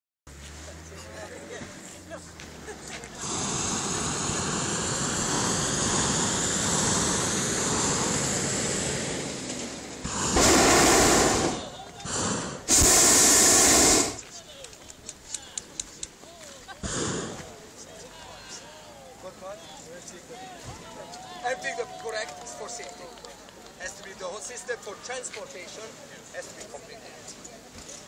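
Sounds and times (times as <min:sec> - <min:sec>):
propane burners firing: 0:03.0 - 0:16.2, 0:16.8 - 0:17.6.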